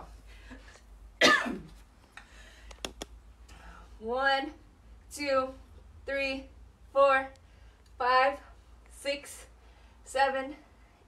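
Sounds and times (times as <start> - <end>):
woman coughing: 1.2 - 1.8.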